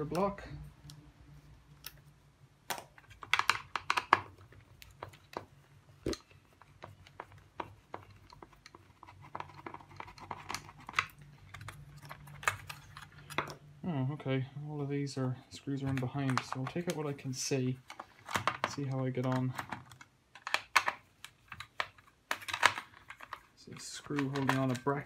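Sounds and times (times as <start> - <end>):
small clicks and plastic rattles: 17.8 - 25.0.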